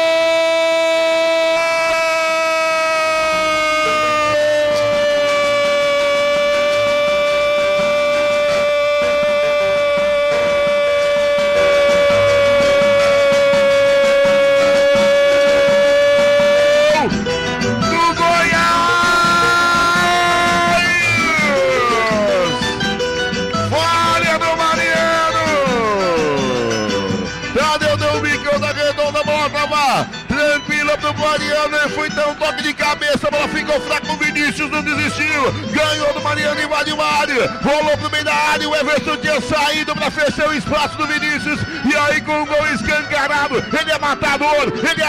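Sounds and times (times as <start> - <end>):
commentator's drawn-out goal cry: 0.0 - 17.2, 17.8 - 22.6, 23.7 - 45.0
music with a beat: 3.0 - 45.0
voice sliding down in pitch: 3.3 - 17.1.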